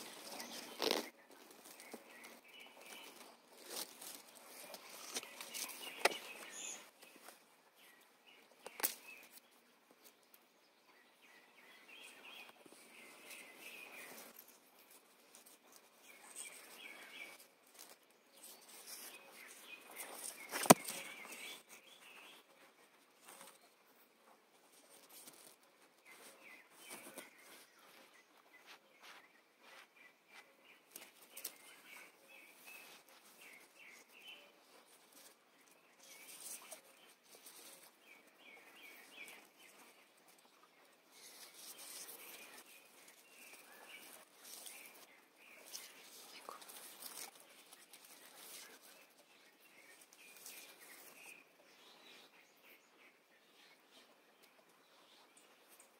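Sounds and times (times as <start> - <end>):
leaves rustling: 0.0 - 7.9, 12.0 - 23.6, 24.6 - 40.4, 41.1 - 51.4
small birds chirping: 0.0 - 55.9.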